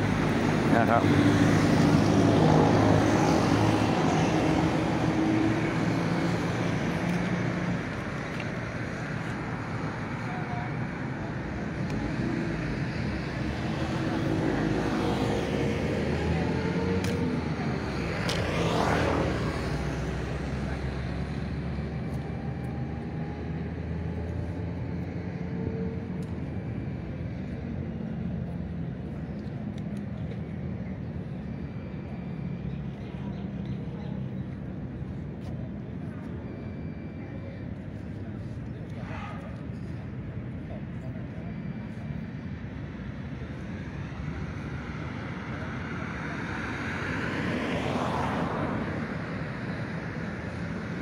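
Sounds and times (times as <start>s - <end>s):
steady road noise: 0.0s - 51.0s.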